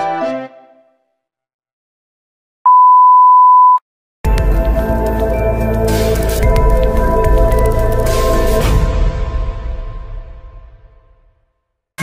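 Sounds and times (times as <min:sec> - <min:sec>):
electronic beep: 0:02.7 - 0:03.8.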